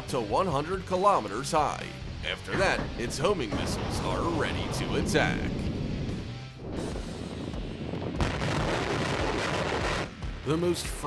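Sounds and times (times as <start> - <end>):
background music: 0.0 - 11.0
rocket launch roar: 3.0 - 5.9, 6.7 - 10.1.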